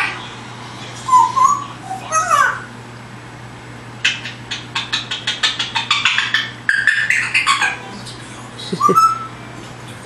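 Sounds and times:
parrot whistling: 1.1 - 2.7, 8.7 - 9.4.

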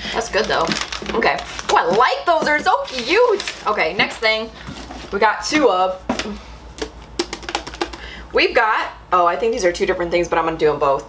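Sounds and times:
tin cans knocking together: 6.1 - 8.1.

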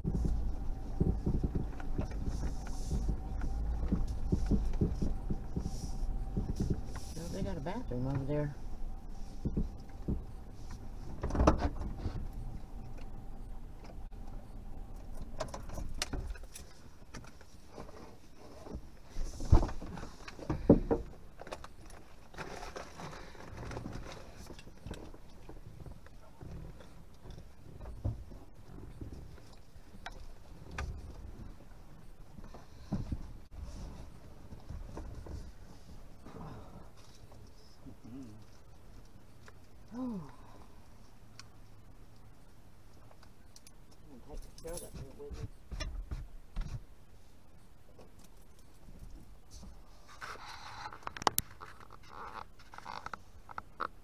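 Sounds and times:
knocks and clicks in car cabin: 0.0 - 7.0.

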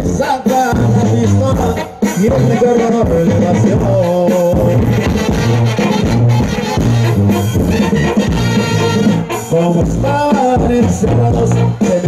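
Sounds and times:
live banda music: 0.0 - 12.0.

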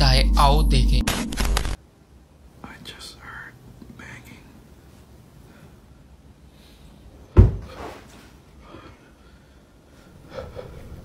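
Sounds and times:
low background hum: 0.0 - 11.0
person whispering: 2.6 - 4.6.

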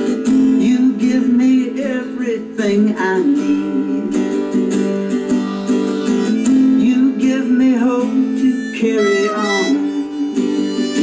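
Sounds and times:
guitar chords: 0.0 - 11.0
harmonica melody with bent notes: 4.6 - 7.0, 7.9 - 11.0.

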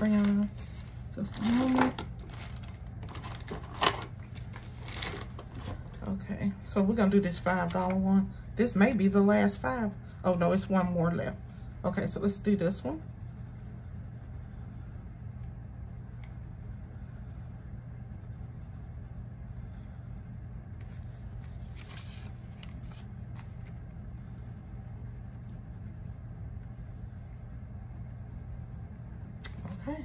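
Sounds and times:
low hum: 0.0 - 30.0
crayon scratching on paper: 6.8 - 30.0.

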